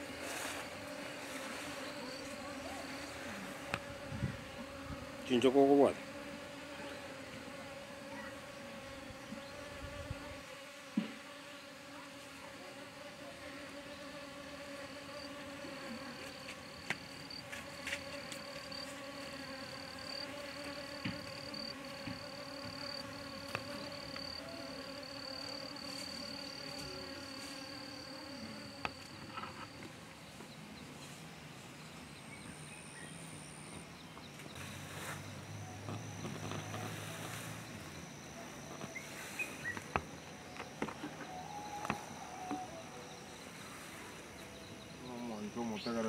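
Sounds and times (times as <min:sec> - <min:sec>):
insects buzzing: 0:00.0 - 0:46.0
high insect trill: 0:13.8 - 0:29.9, 0:32.6 - 0:46.0.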